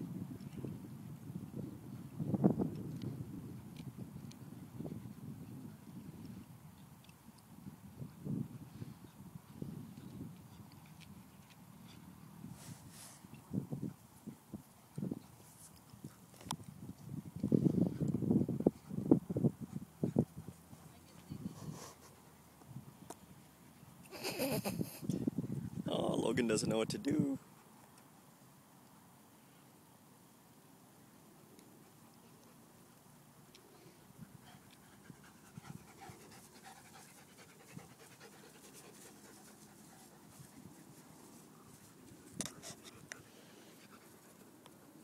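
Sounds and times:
throaty dog noises: 34.2 - 44.6.

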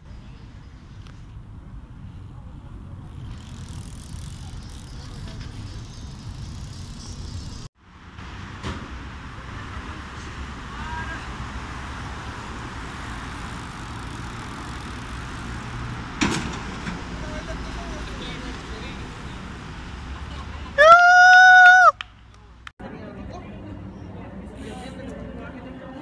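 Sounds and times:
traffic hum: 0.0 - 26.0.

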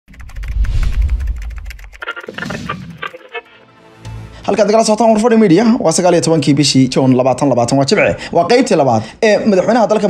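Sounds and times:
fast typing on laptop keyboard: 0.1 - 3.5
deep low rumble: 0.2 - 1.9.

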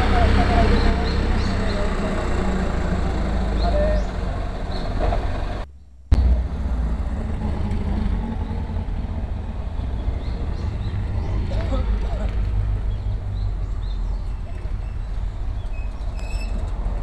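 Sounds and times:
bus engine rumble passing: 0.0 - 17.0
low vehicle rumble: 0.0 - 17.0.

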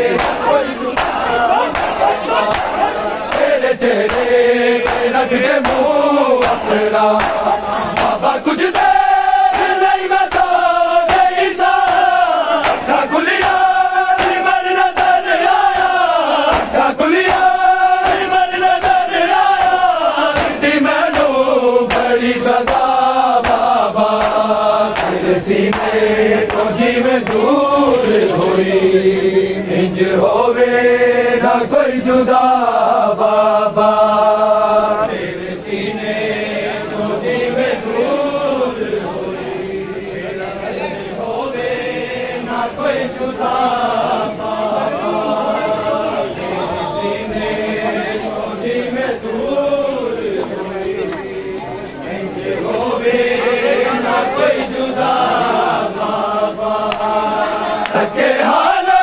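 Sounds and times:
chest-beating slaps: 0.0 - 28.6, 56.8 - 58.1
men chanting a lament: 0.0 - 59.0.

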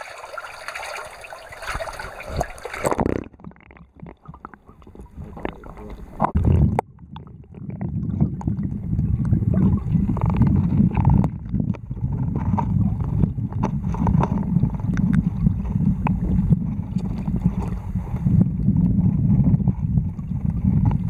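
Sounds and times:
underwater water rumble: 0.0 - 21.0
knocks and gurgles: 0.3 - 21.0.

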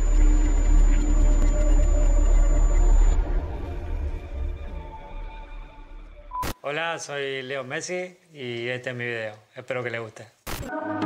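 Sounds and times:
electronic intro music: 0.0 - 6.4.

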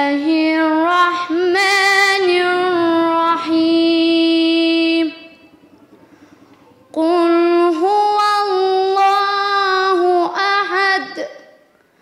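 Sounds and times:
girl chanting verses: 0.0 - 5.4, 6.8 - 11.7.

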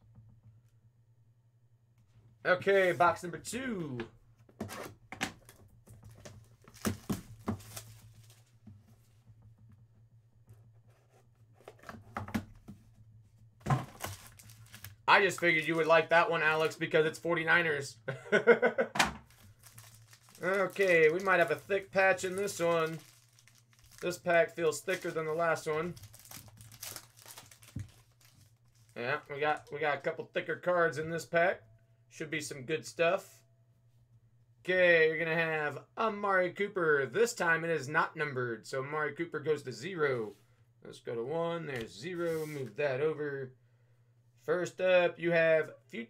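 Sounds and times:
plastic wrap crinkling: 5.4 - 8.6, 13.8 - 16.8, 19.2 - 29.8.

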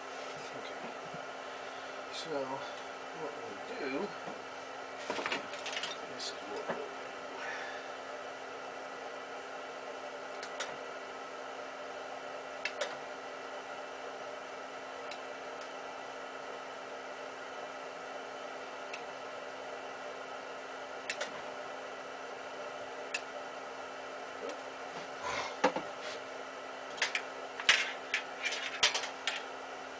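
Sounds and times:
steady mechanical hum: 0.0 - 29.9.

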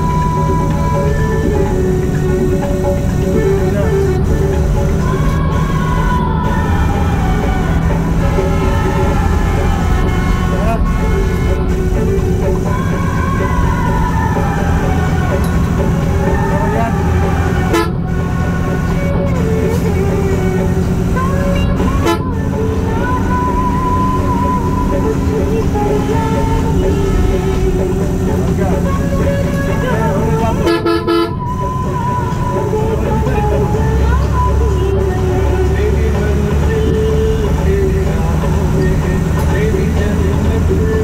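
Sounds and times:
song with singing voice: 0.0 - 41.0
vehicle rumbling on highway: 0.0 - 41.0
horn toots: 7.4 - 20.7, 21.4 - 31.7.

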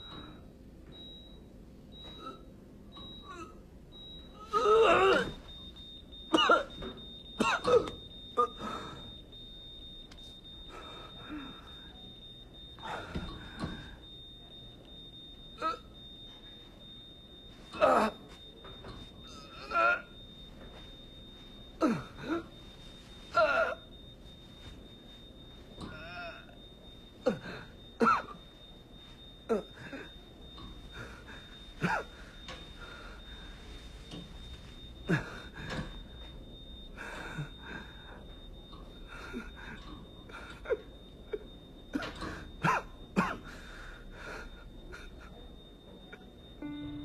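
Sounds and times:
faint high whine: 0.0 - 47.0.

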